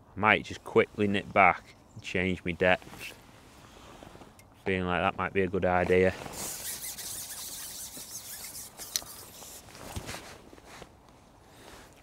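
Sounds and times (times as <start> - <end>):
fishing pole sliding hiss: 6.2 - 10.2.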